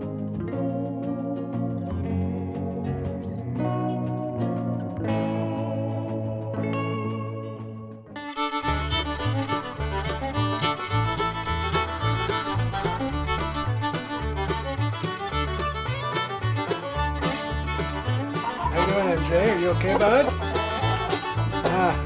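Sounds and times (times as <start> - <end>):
country music with bass and beat: 0.0 - 22.0
plucked guitar music: 0.0 - 22.0.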